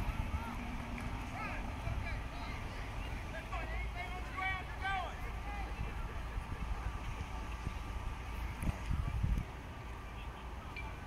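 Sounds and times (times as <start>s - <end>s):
distant people shouting: 0.0s - 6.2s
wind on microphone: 5.8s - 9.6s.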